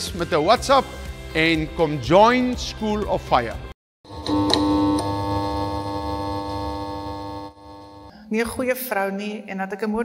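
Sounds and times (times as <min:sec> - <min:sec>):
synthesizer chord: 0:04.1 - 0:08.1.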